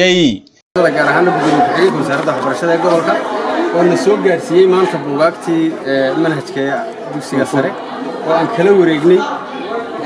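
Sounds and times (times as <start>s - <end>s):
background voices chattering: 0.8s - 10.0s.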